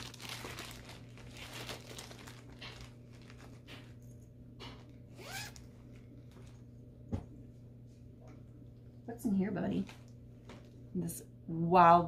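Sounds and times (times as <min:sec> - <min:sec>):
plastic bag crinkling: 0:00.0 - 0:06.7, 0:09.7 - 0:10.8.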